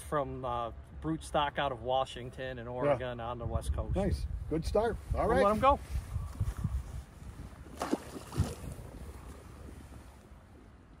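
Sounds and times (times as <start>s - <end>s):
low wind and water rumble: 2.4s - 11.0s
fish splashing in water: 7.6s - 9.9s.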